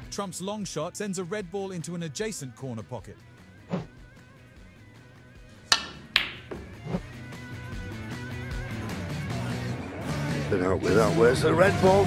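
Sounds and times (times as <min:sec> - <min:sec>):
background music: 0:00.0 - 0:12.0
snooker balls clicking: 0:05.7 - 0:06.7.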